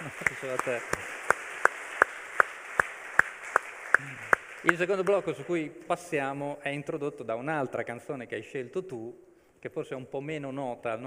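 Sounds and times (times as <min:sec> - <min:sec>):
man clapping hands: 0:00.0 - 0:05.5.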